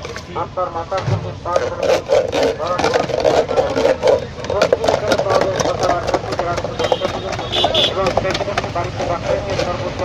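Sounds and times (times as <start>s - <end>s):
voices talking: 0.0s - 10.0s
churner rattling in steel jug: 1.5s - 10.0s.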